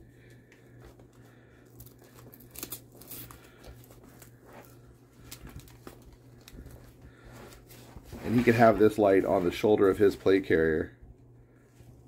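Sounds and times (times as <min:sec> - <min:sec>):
steady low hum: 0:00.0 - 0:12.0
rustling of nylon webbing: 0:01.6 - 0:10.4.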